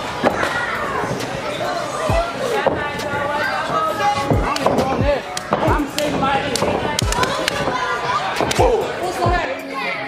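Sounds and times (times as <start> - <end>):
fans shouting: 0.4 - 10.0.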